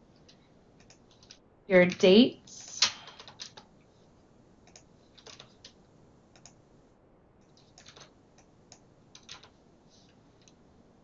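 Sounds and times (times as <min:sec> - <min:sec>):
computer keyboard keystrokes: 0:02.7 - 0:03.7, 0:04.6 - 0:06.6, 0:07.4 - 0:09.6.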